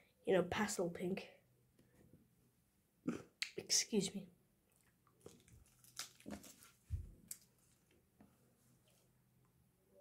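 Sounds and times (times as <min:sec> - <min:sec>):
child chewing and sucking candy: 0:04.7 - 0:07.6.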